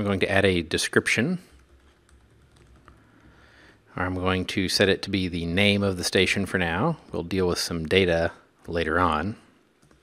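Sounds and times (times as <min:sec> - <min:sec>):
typing on computer keyboard: 0:01.5 - 0:03.1, 0:09.8 - 0:10.0.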